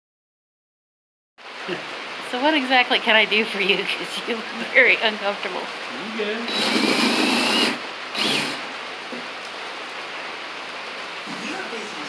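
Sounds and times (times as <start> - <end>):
power drill driving into wood: 6.5 - 8.7.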